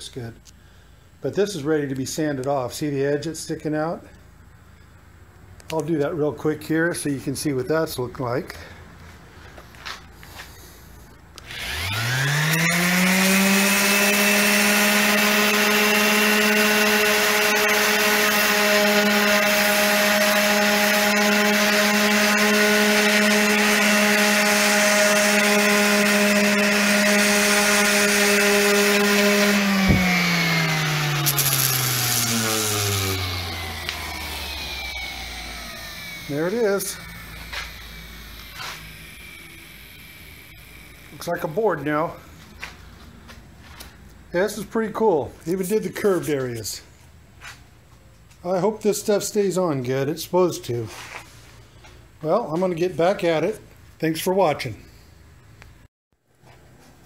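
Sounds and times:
orbital sander whining: 11.4 - 45.8.

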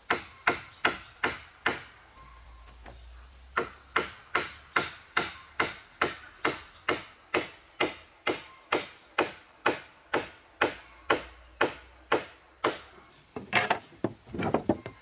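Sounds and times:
hammer striking wooden boards: 0.1 - 1.9, 3.6 - 12.8.

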